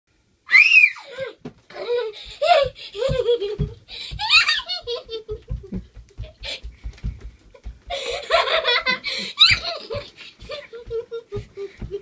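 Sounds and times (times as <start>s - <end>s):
girl squealing with laughter: 0.5s - 2.7s, 4.2s - 4.9s, 9.0s - 11.7s
feet jumping on floor: 2.3s - 12.0s.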